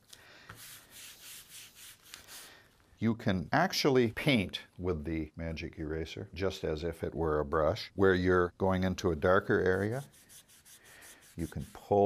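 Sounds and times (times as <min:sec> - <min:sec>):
sponge scrubbing paper: 0:00.6 - 0:02.5, 0:09.6 - 0:12.0.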